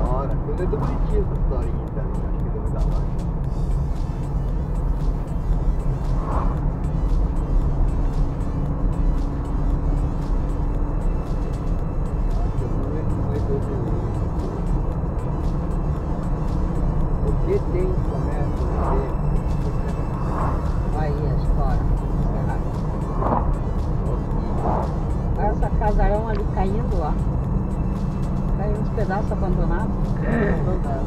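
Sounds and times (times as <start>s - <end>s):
car road and engine rumble: 0.0s - 31.0s.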